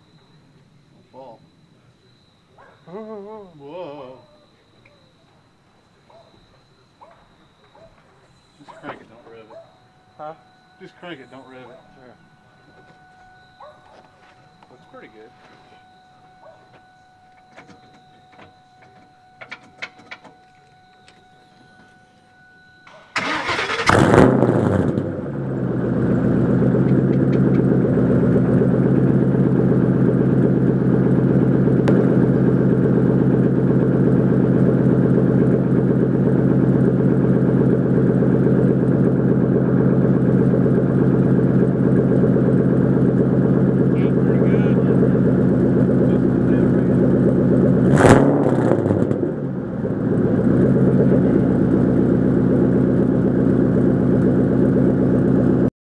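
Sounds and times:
car engine starting and idling: 0:00.0 - 0:55.7
exhaust burst: 0:23.1 - 0:26.7, 0:31.8 - 0:33.7.

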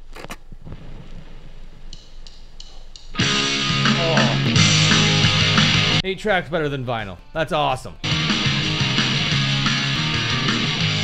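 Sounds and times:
tape hiss with low rumble: 0:00.0 - 0:07.3.

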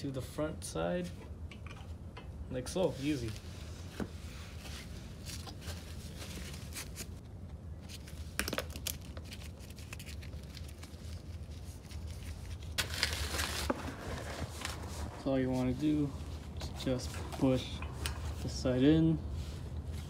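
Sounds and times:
rustling handling noise: 0:02.7 - 0:20.0.

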